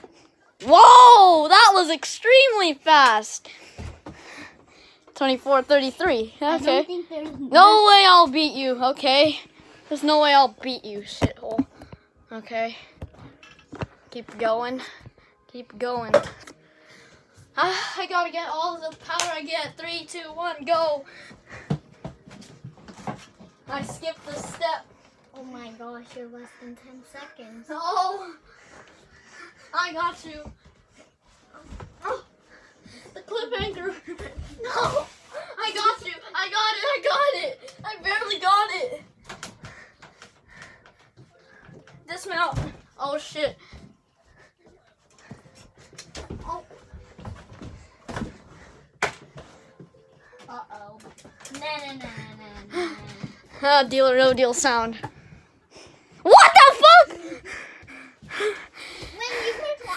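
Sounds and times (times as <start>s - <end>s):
child calling out: 56.3s - 57.1s.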